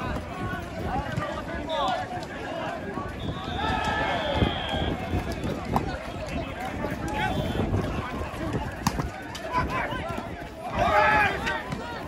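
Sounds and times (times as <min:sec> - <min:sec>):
people shouting and calling: 0:00.0 - 0:12.0.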